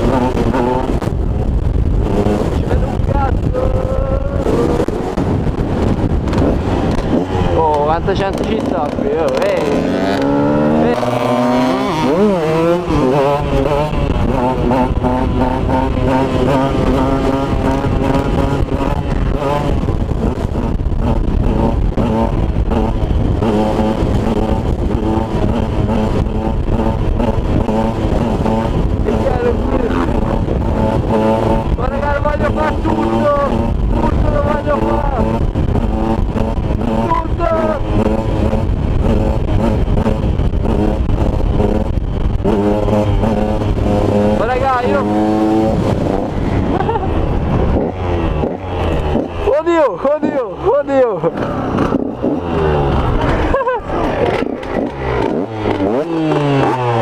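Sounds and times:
two-stroke motorcycle engine revving: 0:00.0 - 0:57.0.

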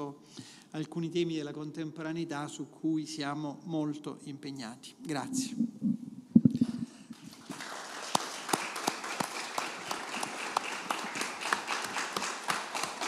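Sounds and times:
audience applause: 0:07.1 - 0:13.0.

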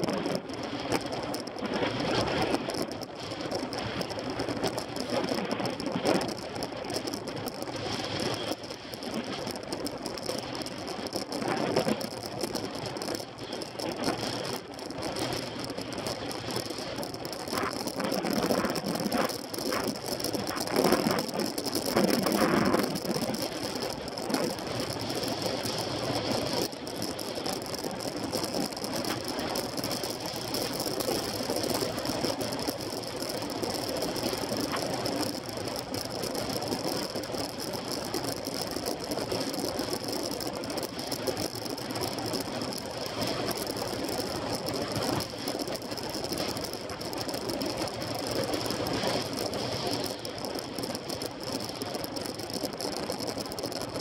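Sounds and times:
bike drivetrain and tyres on tarmac: 0:00.0 - 0:54.0.

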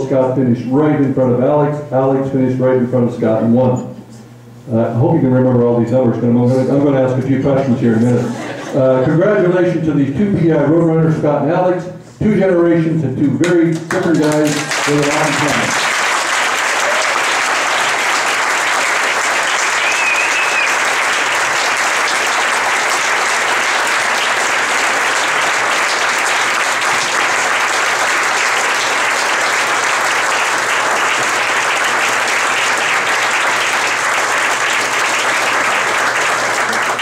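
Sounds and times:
audience applauding: 0:13.7 - 0:37.0.

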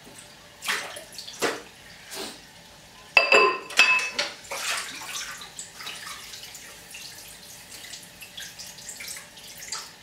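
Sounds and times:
crockery clinking: 0:03.2 - 0:04.2
small knocks of dishes: 0:03.2 - 0:04.3
water splashing in sink: 0:03.2 - 0:10.0.

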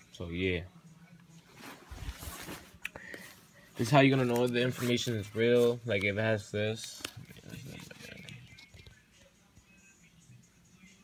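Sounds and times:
nylon fabric rustling: 0:01.4 - 0:02.8.

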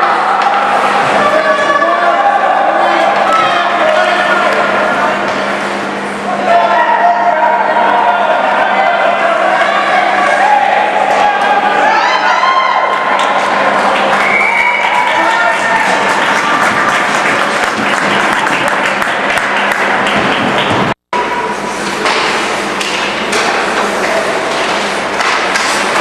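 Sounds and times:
spectators shouting: 0:06.4 - 0:16.9
hockey sticks and puck clacking: 0:21.9 - 0:26.0.

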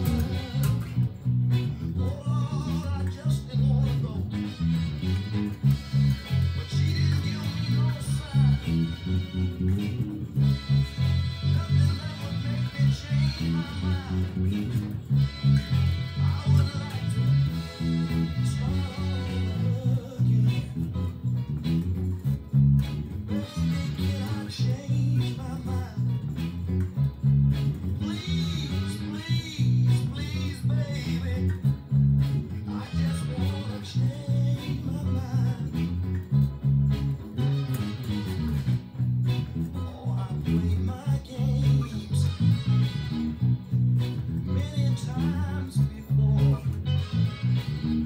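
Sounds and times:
band playing: 0:00.0 - 0:01.6, 0:04.3 - 0:21.0, 0:36.7 - 0:39.6
electric bass line: 0:00.0 - 0:48.0
soul music recording: 0:00.0 - 0:48.0.

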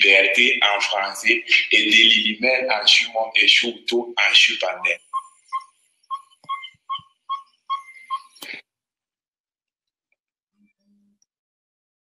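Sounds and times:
high whistle-like beeps: 0:05.0 - 0:08.4.

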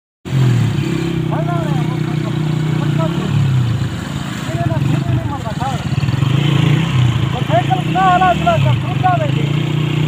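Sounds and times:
small motorcycle engine running: 0:00.5 - 0:10.0
voices calling out: 0:01.1 - 0:10.0.

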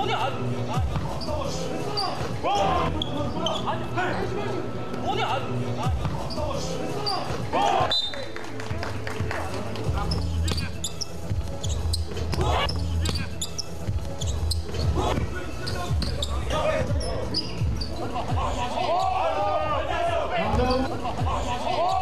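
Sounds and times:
sneakers squeaking on floor: 0:00.0 - 0:05.2, 0:05.8 - 0:08.2, 0:09.7 - 0:22.0
players' voices: 0:00.0 - 0:22.0
basketball bouncing on court: 0:09.9 - 0:17.9.

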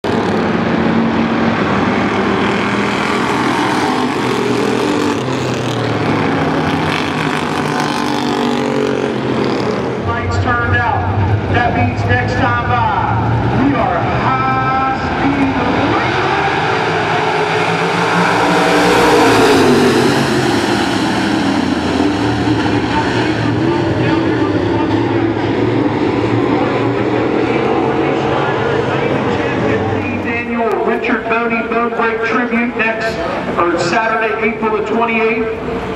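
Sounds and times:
race car engines: 0:00.0 - 0:35.9.

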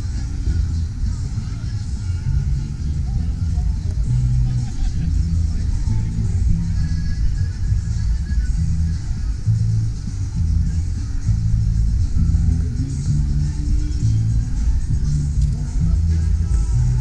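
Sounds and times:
music with deep bass line: 0:00.0 - 0:17.0.

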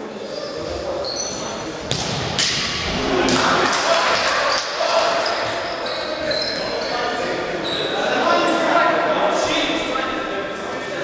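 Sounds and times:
people shouting in a hall: 0:02.9 - 0:06.8.

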